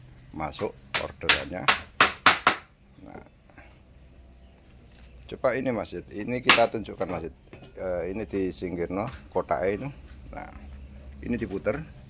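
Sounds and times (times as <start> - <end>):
hammer striking wooden crate: 0.6 - 2.7, 6.4 - 7.2.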